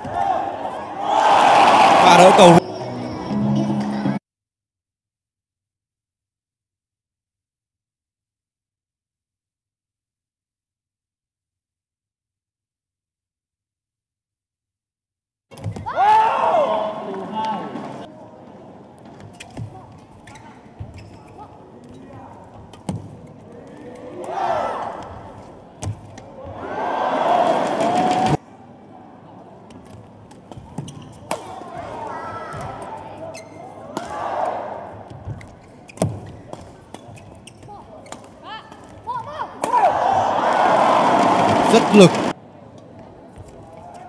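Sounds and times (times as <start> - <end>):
bursts of voices: 39.6 - 42.3.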